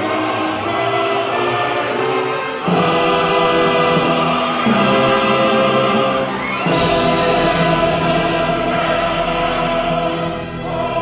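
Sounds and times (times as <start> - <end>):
opera chorus with orchestra: 0.0 - 11.0.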